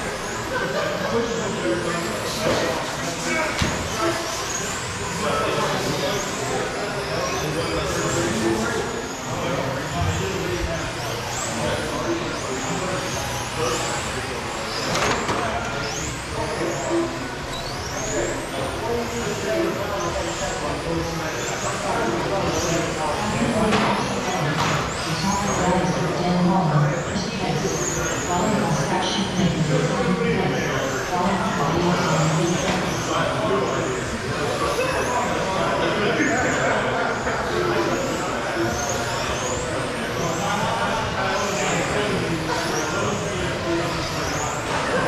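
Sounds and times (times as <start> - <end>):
electric rc car motors whining: 0.0 - 26.2, 27.0 - 45.0.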